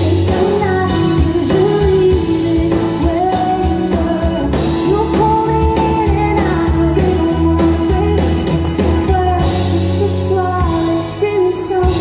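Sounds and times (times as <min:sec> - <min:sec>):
acoustic and electric guitars: 0:00.0 - 0:12.0
drum kit: 0:00.0 - 0:12.0
keyboards: 0:00.0 - 0:12.0
woman singing: 0:00.0 - 0:12.0.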